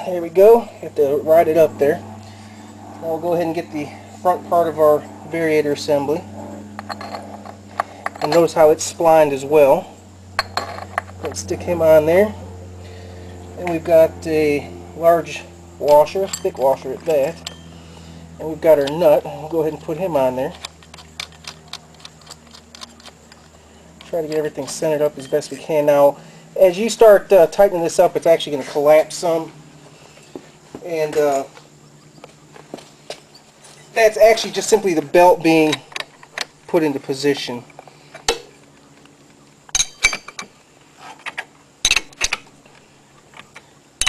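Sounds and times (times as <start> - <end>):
metal tools clinking: 6.8 - 8.9, 15.8 - 17.8, 18.7 - 25.7, 31.0 - 31.5, 39.7 - 40.6, 41.8 - 42.5
metal parts clicking: 19.9 - 25.5, 39.7 - 40.5, 41.2 - 42.5.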